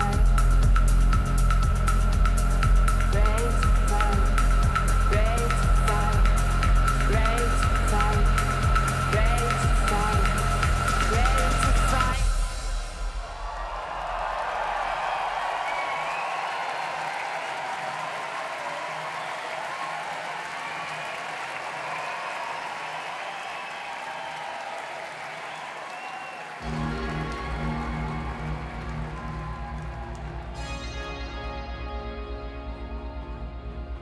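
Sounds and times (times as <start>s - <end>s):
electronic music with pulsing bass: 0.0s - 13.7s, 26.6s - 34.0s
crowd applauding and cheering: 0.0s - 32.5s
whistling: 15.0s - 17.6s, 20.5s - 26.8s.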